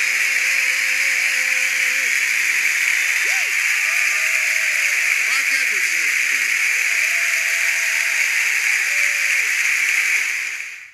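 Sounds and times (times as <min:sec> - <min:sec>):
audience applauding and cheering: 0:00.0 - 0:10.9.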